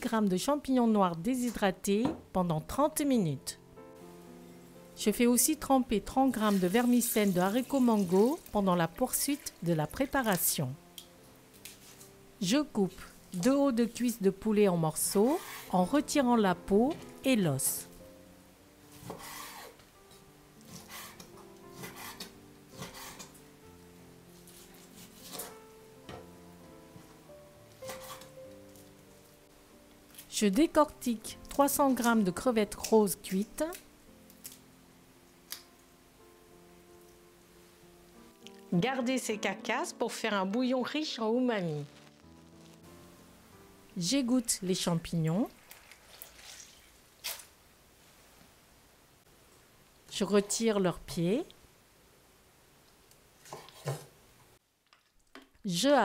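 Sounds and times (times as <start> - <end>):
quiet background music: 0.0 - 54.7, 55.5 - 56.0
water squeezed from mushrooms: 6.4 - 8.6, 45.5 - 47.6
knife scraping on wooden board: 15.2 - 15.7, 19.0 - 19.8, 20.7 - 23.3, 27.8 - 28.4.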